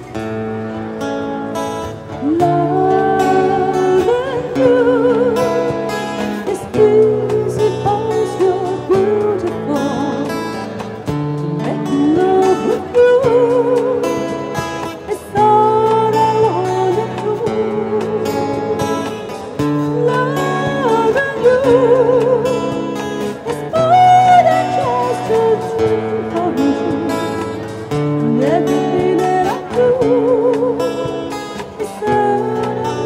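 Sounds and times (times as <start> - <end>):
woman singing with vibrato: 2.2 - 10.7, 11.4 - 33.0.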